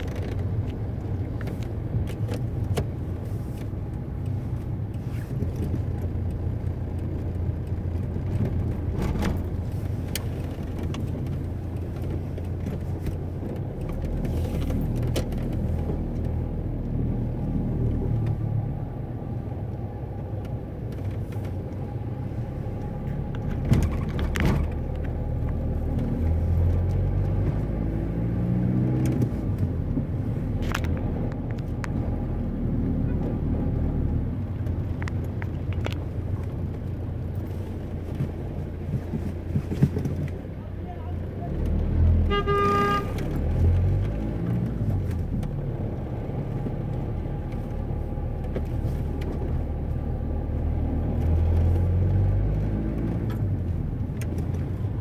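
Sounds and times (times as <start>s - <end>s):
car engine and road noise: 0.0s - 55.0s
clicks and rattles: 23.3s - 25.6s, 34.5s - 37.0s.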